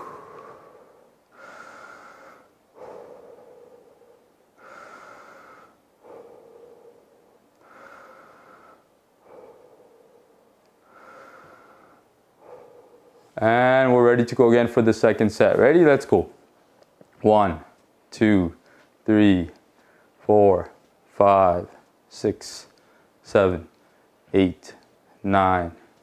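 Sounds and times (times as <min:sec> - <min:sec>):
man breathing deeply: 0:00.0 - 0:13.4, 0:19.8 - 0:20.2, 0:22.8 - 0:23.2.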